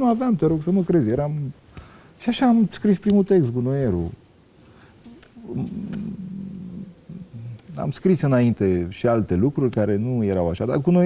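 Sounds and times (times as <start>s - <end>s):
man's creaky hesitation sound: 5.1s - 7.8s.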